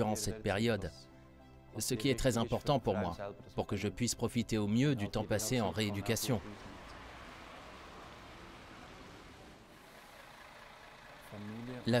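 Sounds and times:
distant road traffic: 5.8 - 12.0.

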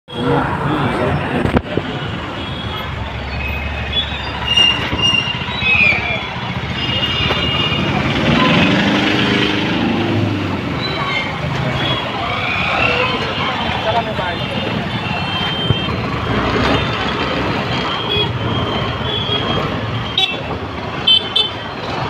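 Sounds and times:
people talking: 0.1 - 2.3, 10.8 - 16.0
motorbike and traffic running: 0.1 - 22.0.

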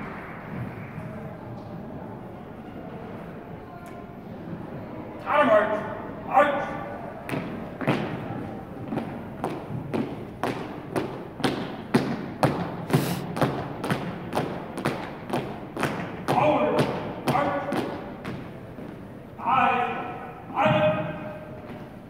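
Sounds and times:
marching footsteps on hardwood floor: 7.3 - 19.0.

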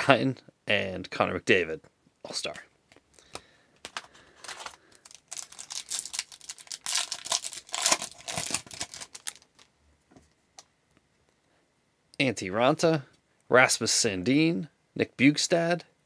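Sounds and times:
plastic wrapper tearing and crinkling: 3.8 - 9.7.

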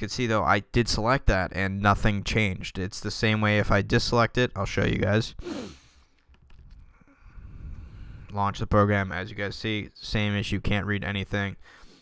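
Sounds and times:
low background rumble: 6.3 - 8.4.

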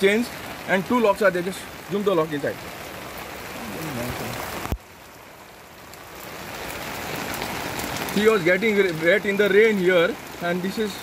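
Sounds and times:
steady rain hiss: 0.0 - 11.0.

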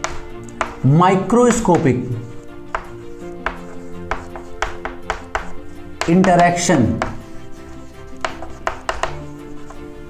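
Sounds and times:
chalk tapping on board: 0.0 - 9.9
chalk writing on chalkboard: 0.0 - 10.0
faint background music: 0.0 - 10.0.

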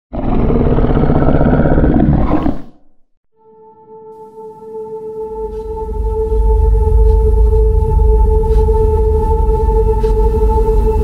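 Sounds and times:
deep creature roar: 0.1 - 2.8.

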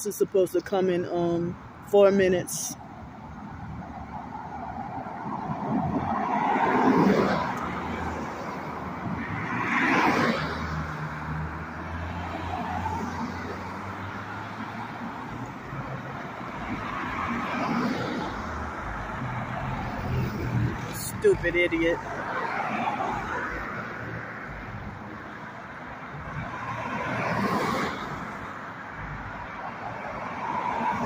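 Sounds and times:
cars passing by: 0.0 - 31.0.

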